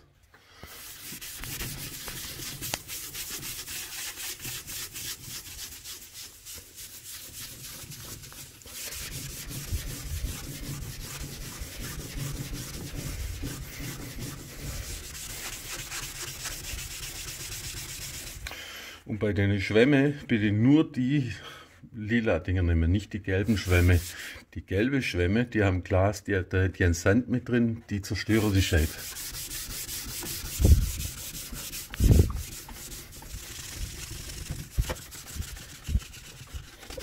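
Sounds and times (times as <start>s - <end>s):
wet sponge scrubbing glass: 0.6s - 18.4s, 23.5s - 24.2s, 28.3s - 37.0s.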